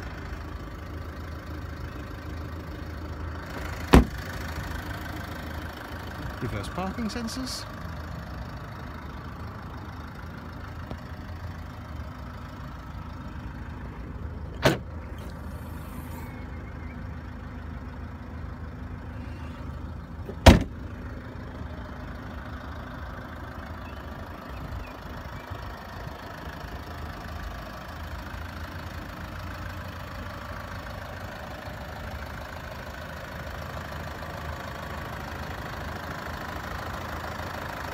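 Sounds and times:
diesel engine idling: 0.0s - 37.9s.

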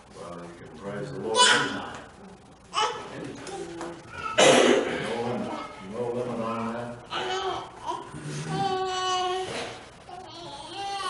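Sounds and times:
loud cough: 4.4s - 5.0s.

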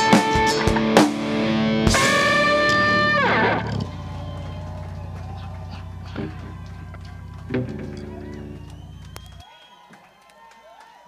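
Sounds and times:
electric guitar and band chord: 0.0s - 9.1s.

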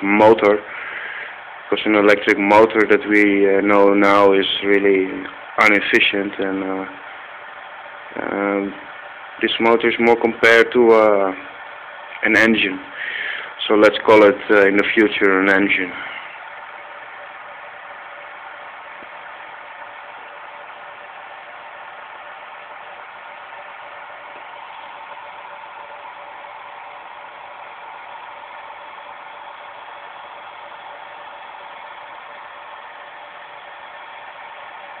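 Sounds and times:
background hum and hiss: 0.0s - 35.0s.

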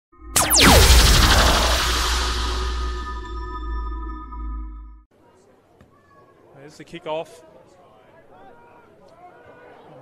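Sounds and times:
fast falling whooshes: 0.4s - 3.2s
sudden hit: 0.4s - 4.0s
deep low boom: 0.4s - 4.1s.

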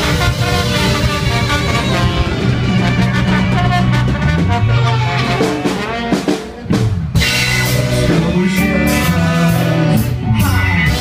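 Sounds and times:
horn section holding notes: 0.0s - 11.0s
ska band playing: 0.0s - 11.0s.

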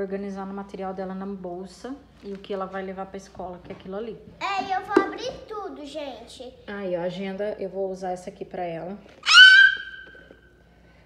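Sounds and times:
high-pitched squeal: 9.2s - 10.2s.

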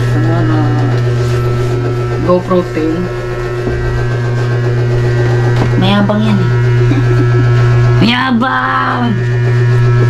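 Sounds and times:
loud low electrical hum: 0.0s - 10.0s.

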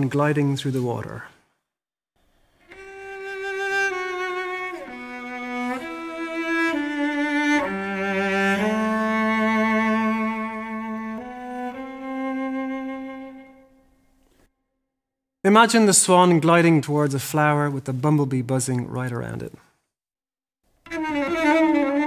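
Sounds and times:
solo cello bowed melody: 2.6s - 14.0s, 20.8s - 22.0s.

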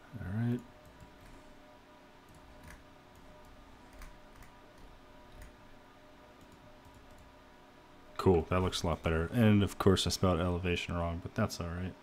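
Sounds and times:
low room hum: 0.0s - 12.0s
computer mouse clicks: 2.3s - 5.6s.

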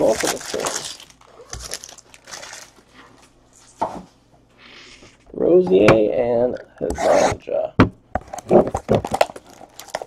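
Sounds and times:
trading cards rustling and crinkling: 0.0s - 3.3s, 8.3s - 10.0s.

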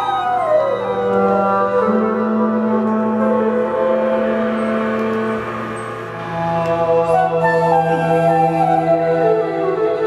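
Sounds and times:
live band playing ambient music: 0.0s - 10.0s
low drone note: 0.0s - 10.0s
sustained gliding tones: 0.0s - 10.0s.

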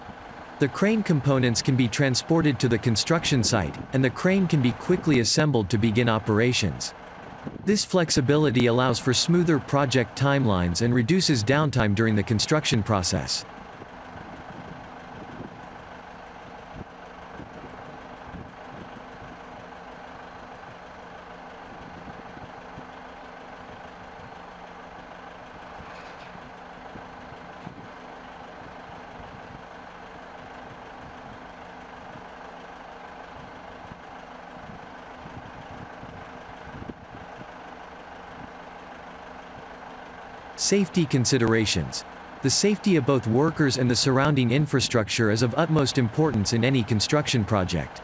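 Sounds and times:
low engine hum: 0.0s - 48.0s.

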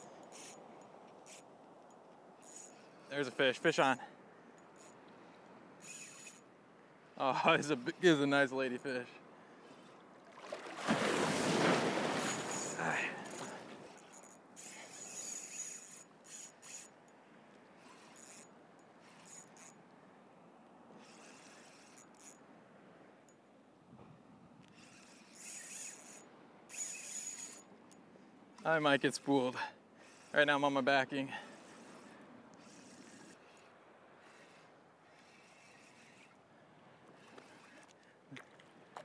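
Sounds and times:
fishing reel drag whining: 0.0s - 4.0s, 4.6s - 6.5s, 12.2s - 17.0s, 17.8s - 19.8s, 20.9s - 22.4s, 24.6s - 28.0s, 28.6s - 36.4s, 37.1s - 38.0s
reel handle cranking: 0.0s - 4.0s, 5.8s - 6.5s, 12.3s - 17.0s, 17.8s - 19.8s, 20.9s - 22.4s, 24.6s - 28.0s, 28.6s - 36.4s, 37.1s - 38.0s.

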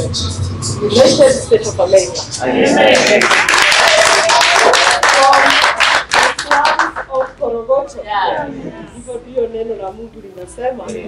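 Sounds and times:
voices: 0.0s - 11.0s
people clapping loudly: 2.8s - 7.4s.

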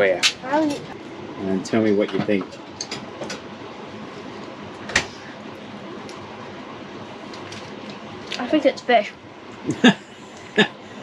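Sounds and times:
steady low hiss: 5.4s - 11.0s.

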